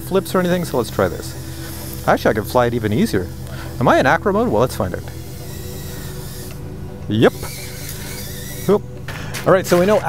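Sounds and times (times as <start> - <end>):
background music: 0.0 - 10.0
steady hiss: 0.0 - 10.0.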